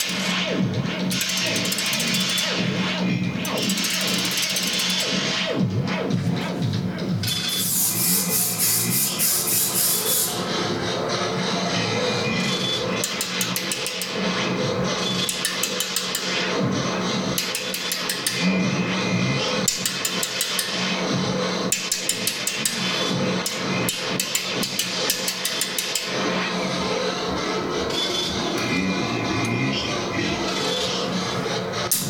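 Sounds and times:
steady low drone: 0.0s - 13.1s, 26.0s - 32.0s
looping feedback texture: 0.1s - 15.7s, 24.9s - 32.0s.

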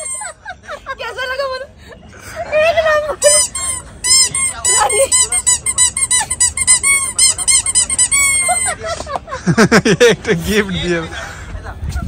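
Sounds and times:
rubber duck toy squeaking: 0.0s - 0.4s, 3.2s - 8.8s.

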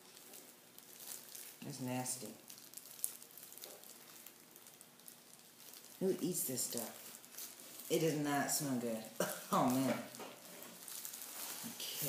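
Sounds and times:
plastic gloves crackling: 0.0s - 12.0s.

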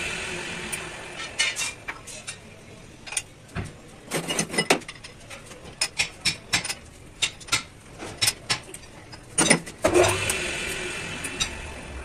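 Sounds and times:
metal lathe humming: 0.0s - 2.0s, 9.8s - 12.0s.

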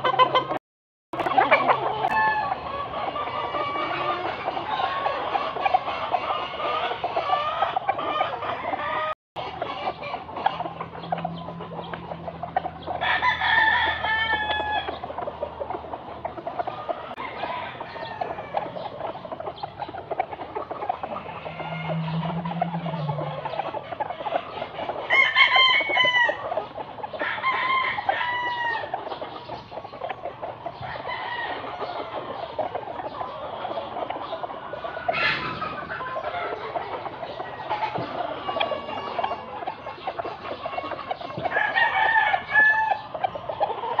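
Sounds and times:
chickens clucking: 0.0s - 0.6s, 1.2s - 44.0s
roosters crowing: 1.2s - 44.0s.

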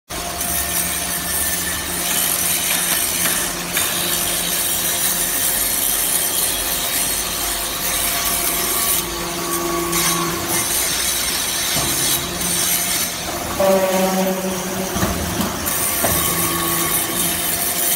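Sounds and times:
motor and pump hum: 0.1s - 17.9s
higher machine tone: 12.3s - 17.6s
scraping hiss of metal shavings: 15.6s - 17.9s.

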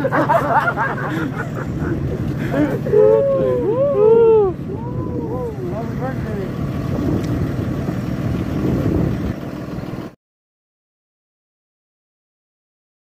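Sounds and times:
men's voices calling: 0.0s - 6.8s
bus engine idling: 0.0s - 10.2s.

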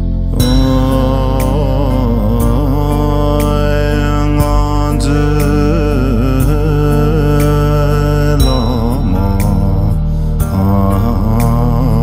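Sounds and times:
person singing prayer song: 0.0s - 12.0s
sustained low backing tones: 0.0s - 12.0s.

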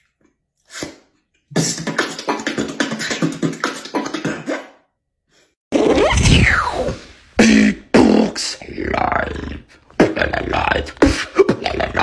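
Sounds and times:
beatboxing: 0.7s - 4.9s, 5.8s - 12.0s
vocal effect with falling pitch: 5.8s - 12.0s.

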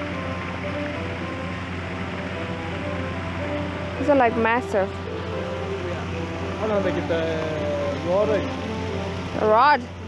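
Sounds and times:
fountain splashing into pond: 0.0s - 10.0s
soft background music: 0.0s - 10.0s.

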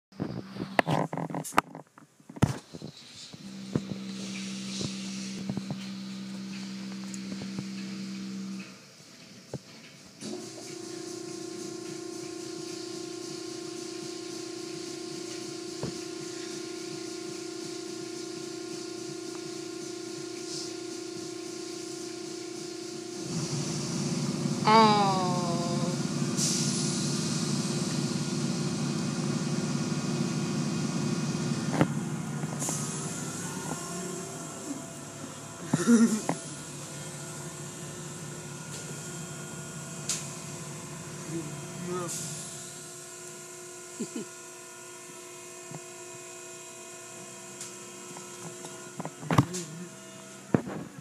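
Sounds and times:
car wash motor humming: 2.2s - 51.0s
higher-pitched hum: 3.2s - 8.7s, 14.9s - 44.3s
water spray hissing on car: 3.9s - 44.2s.

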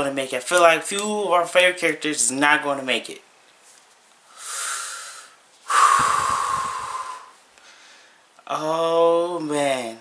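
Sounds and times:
man breathing heavily: 4.3s - 8.3s.

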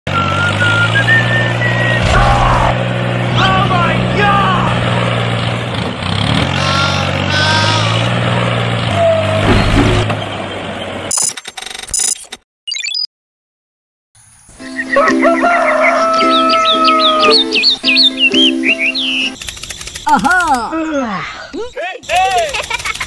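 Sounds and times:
tractor engine humming: 0.1s - 9.3s, 14.6s - 20.2s
high-pitched vocal squeals: 6.5s - 8.2s
rapid clicking: 19.4s - 20.6s, 22.1s - 23.0s.

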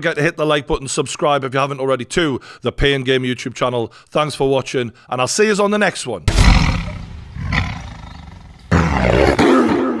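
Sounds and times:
tiger roar: 6.3s - 10.0s.

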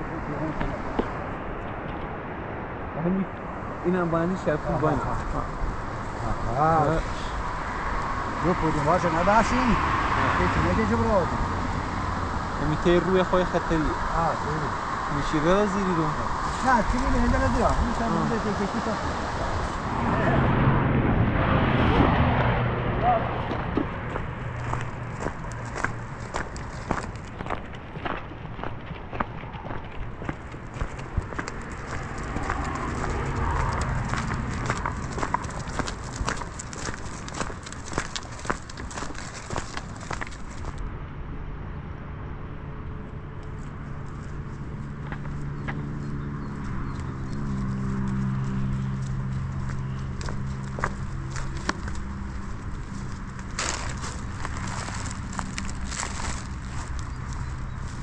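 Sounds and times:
footsteps on gravel: 23.4s - 40.8s, 43.9s - 58.0s
donkey hooves on gravel: 23.5s - 40.8s, 43.5s - 58.0s.

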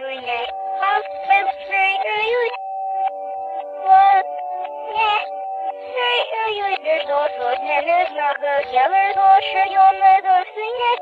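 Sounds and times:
toy singing in synthetic voice: 0.0s - 2.6s, 3.8s - 4.3s, 4.9s - 5.3s, 5.9s - 11.0s
simple backing tune: 0.0s - 11.0s.

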